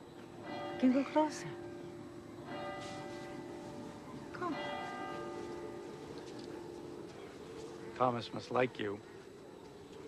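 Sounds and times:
church bell tolling: 0.4 - 7.1.

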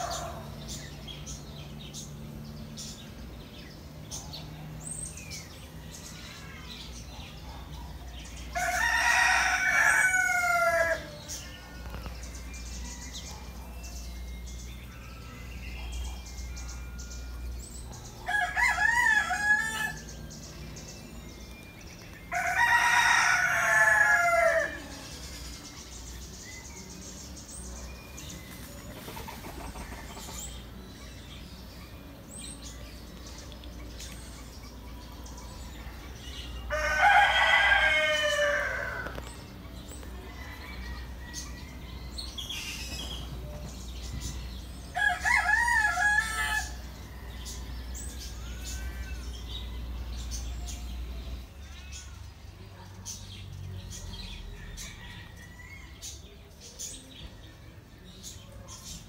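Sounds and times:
rooster crowing: 8.5 - 11.4, 18.2 - 20.1, 22.3 - 25.0, 36.7 - 39.2, 45.0 - 47.7.

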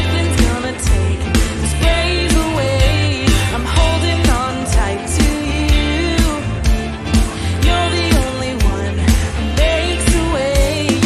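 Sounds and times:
acoustic and electric guitars: 0.0 - 11.0.

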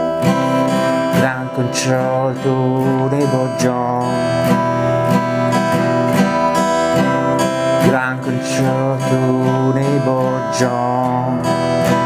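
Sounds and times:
acoustic guitar strummed chords: 0.0 - 12.0.

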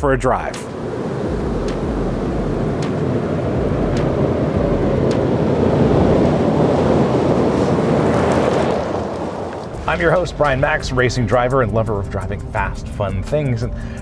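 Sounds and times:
pickup engine passing: 0.7 - 10.9
tyres on loose gravel: 7.2 - 10.8.

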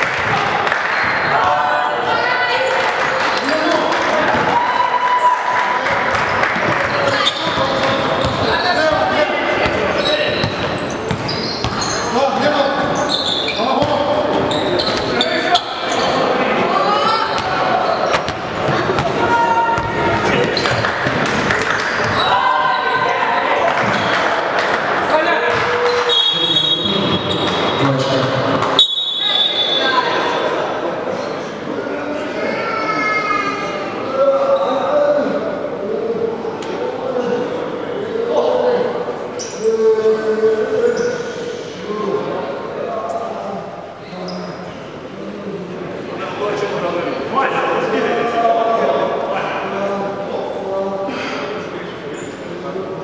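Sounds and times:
basketball bouncing on court: 6.9 - 12.0, 18.1 - 22.2
referee's whistle blasts: 25.9 - 27.8, 28.8 - 30.0.

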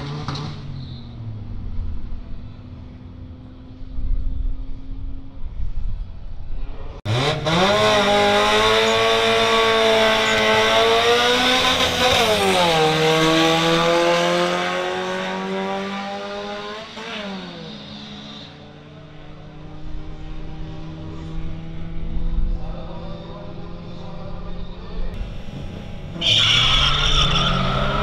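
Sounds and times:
engine upshifts: 7.0 - 28.0
cars accelerating: 7.1 - 28.0.

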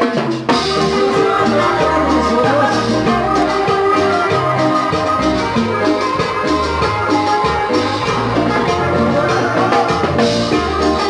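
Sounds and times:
live cumbia band playing: 0.0 - 11.0.

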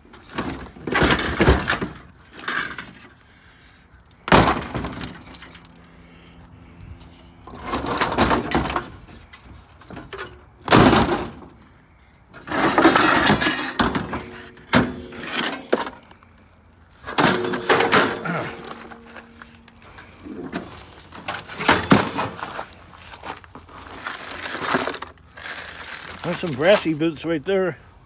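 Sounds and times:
scrap metal clattering: 17.0 - 22.7, 23.7 - 27.1.

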